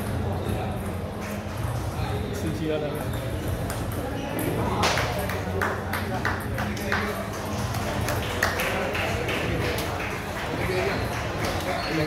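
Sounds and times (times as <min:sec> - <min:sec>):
chatter of busy hall: 0:00.0 - 0:12.0.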